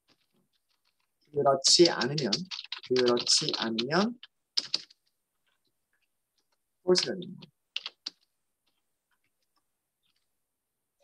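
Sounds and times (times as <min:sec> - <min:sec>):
keyboard keystrokes: 0:01.8 - 0:05.0, 0:07.0 - 0:08.3.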